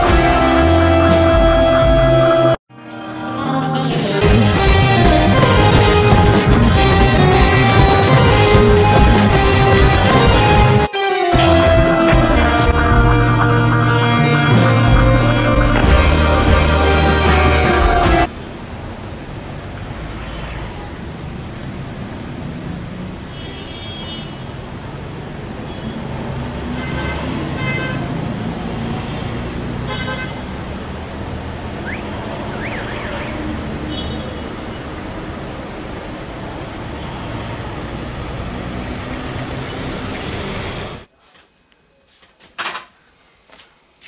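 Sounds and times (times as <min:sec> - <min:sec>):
city street traffic: 0:00.0 - 0:44.0
car horn beeps: 0:29.9 - 0:30.4.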